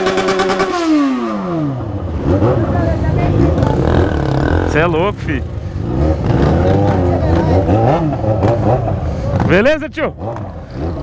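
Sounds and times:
motorcycle engine running at low revs: 0.0 - 11.0
voices: 2.2 - 10.5.

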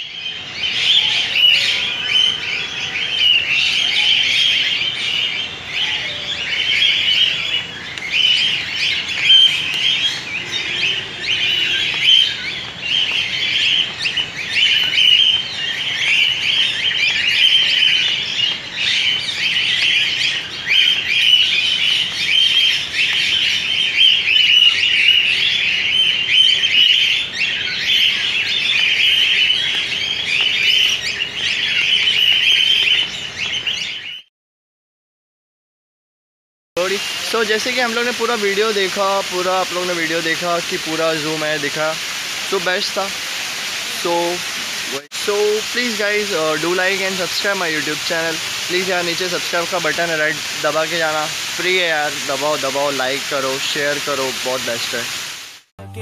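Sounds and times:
parrots chirping and chattering: 0.0 - 34.2, 36.8 - 55.6.

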